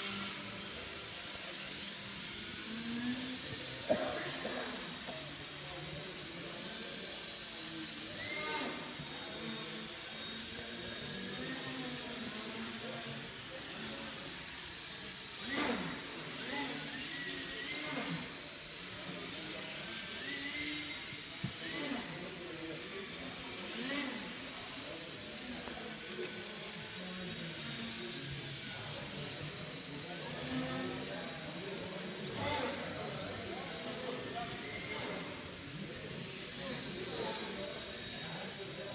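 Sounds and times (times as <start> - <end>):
model plane motor whining: 0.0 - 38.9.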